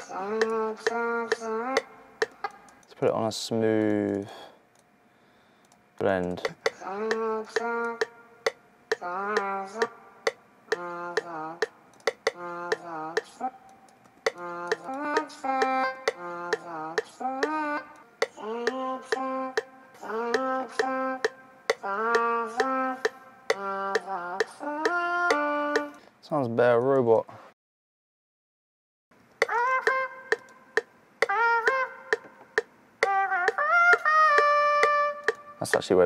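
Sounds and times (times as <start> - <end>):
auto-tuned vocal phrases: 0.0 - 1.9, 6.0 - 8.1, 14.3 - 27.2
sharp clicks: 11.9 - 13.3, 13.9 - 15.3, 34.8 - 35.4.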